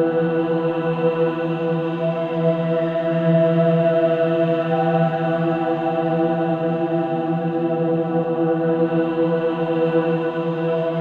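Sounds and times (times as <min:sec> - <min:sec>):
droning meditation music: 0:00.0 - 0:11.0.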